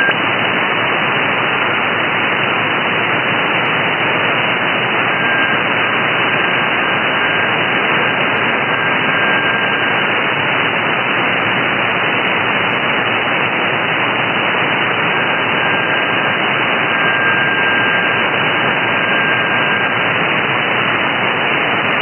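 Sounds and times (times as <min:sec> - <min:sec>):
shortwave radio static: 0:00.0 - 0:22.0
thin steady radio tone: 0:00.0 - 0:22.0.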